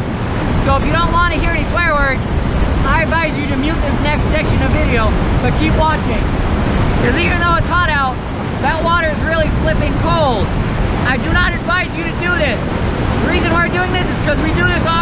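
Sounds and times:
creek rapids rushing: 0.0 - 15.0
wind on microphone: 0.0 - 15.0.

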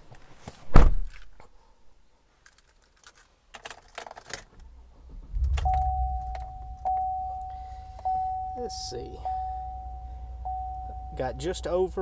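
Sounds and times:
low hum: 4.6 - 12.0
dashboard warning chime: 5.5 - 12.0.

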